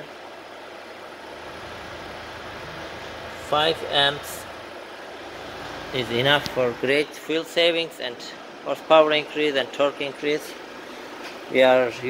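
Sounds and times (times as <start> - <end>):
car engine idling: 1.0 - 7.0.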